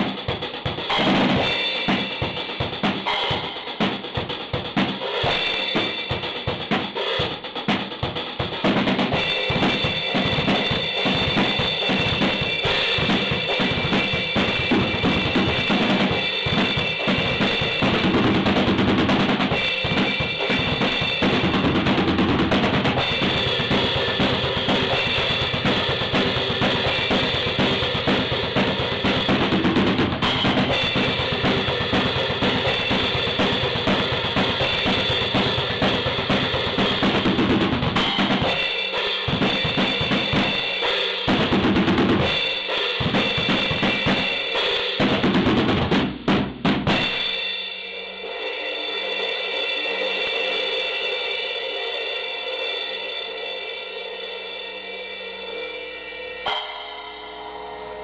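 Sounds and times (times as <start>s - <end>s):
drum kit solo: 0.0s - 58.0s
cymbals ringing: 9.2s - 18.4s, 19.5s - 21.8s, 23.0s - 41.6s, 42.2s - 45.0s, 47.0s - 58.0s.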